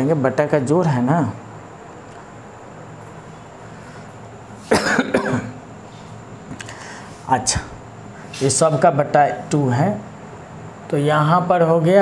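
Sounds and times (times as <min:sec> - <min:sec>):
man coughing: 0:04.7 - 0:05.6.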